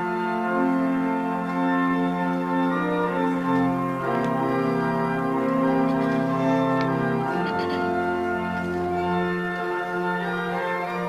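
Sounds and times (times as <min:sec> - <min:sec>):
church organ playing chords: 0:00.0 - 0:11.0.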